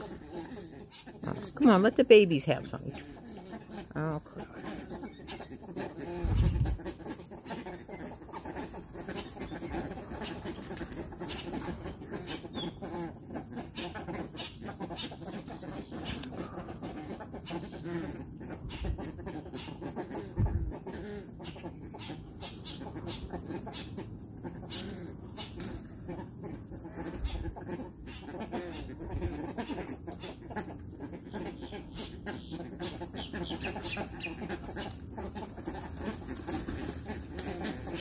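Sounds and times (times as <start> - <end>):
birds chattering calls: 0.0 - 38.0.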